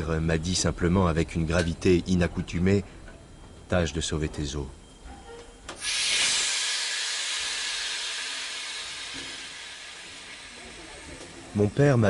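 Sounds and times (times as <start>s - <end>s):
loud hiss of noise: 5.7s - 12.0s.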